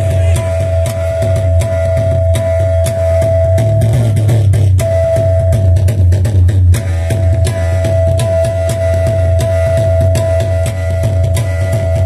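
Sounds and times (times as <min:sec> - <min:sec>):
heavy low drone: 0:00.0 - 0:11.8
sharp drum strokes: 0:00.0 - 0:12.0.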